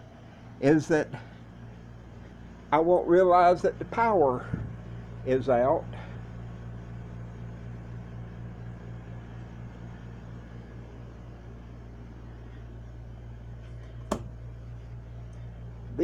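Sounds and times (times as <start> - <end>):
electrical hum: 0.0 - 16.0.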